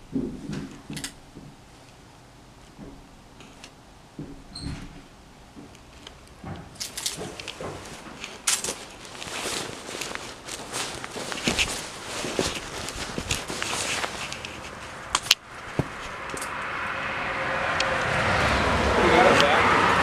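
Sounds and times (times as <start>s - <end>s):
handling clicks and knocks: 0.0s - 2.0s, 2.7s - 16.6s
footsteps: 2.6s - 16.7s.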